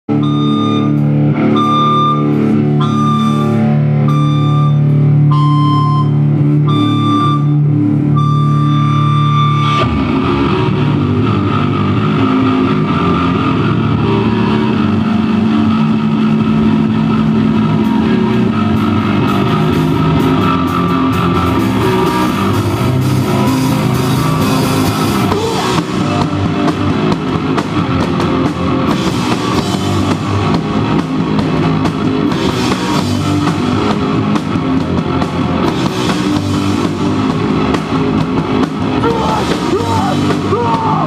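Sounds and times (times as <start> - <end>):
live punk band playing: 0.1 - 41.0.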